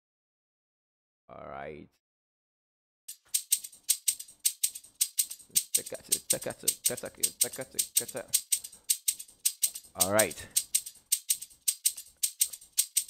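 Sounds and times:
looped shaker rhythm: 3.1s - 13.0s.

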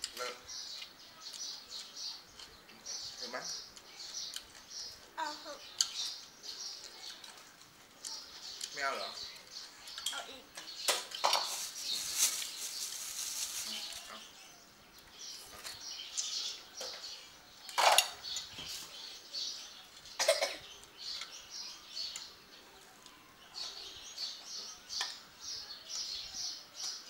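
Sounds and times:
small birds chirping: 0.0s - 27.0s
spoons and pot clinking on plates: 9.9s - 11.8s, 17.7s - 18.8s.

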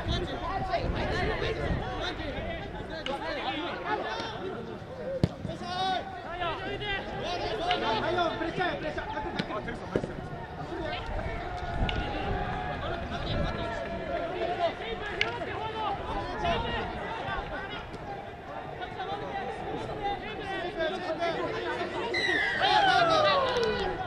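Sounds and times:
players shouting and calling: 0.0s - 24.0s.

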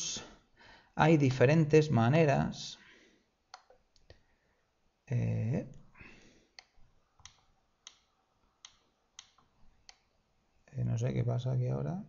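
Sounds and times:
computer mouse clicking: 3.5s - 4.2s, 6.6s - 10.1s.

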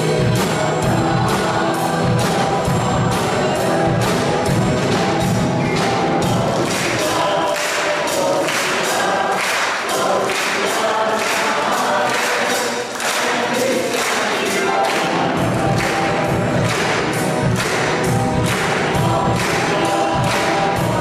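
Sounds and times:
cantor singing: 0.0s - 21.0s
congregation and choir singing hymn: 0.0s - 21.0s
instrumental accompaniment: 0.0s - 21.0s.

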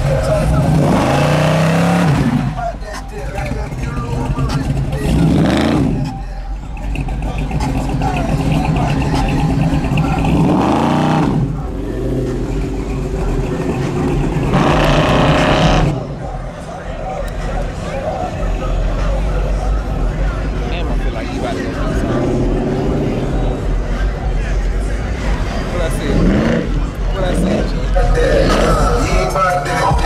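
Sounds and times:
car engine revving: 0.0s - 30.0s.

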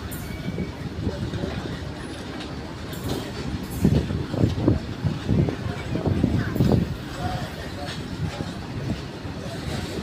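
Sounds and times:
train wagons knocking and clattering: 0.0s - 10.0s
train wheels rumbling on rails: 0.0s - 10.0s.

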